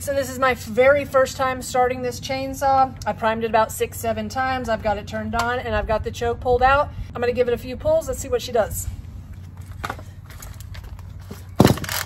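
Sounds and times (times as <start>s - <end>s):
quiet shop sound: 0.0s - 12.0s
chainsaw recoil starter whir: 10.4s - 12.0s.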